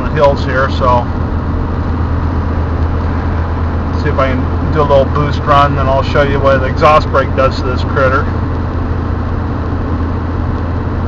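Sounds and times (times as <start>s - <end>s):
diesel engine drone: 0.0s - 11.0s
road noise hiss: 0.0s - 11.0s.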